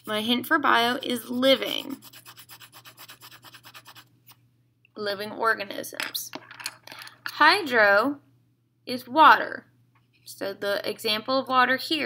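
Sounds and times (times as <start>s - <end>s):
pencil scratching on paper: 0.0s - 4.1s.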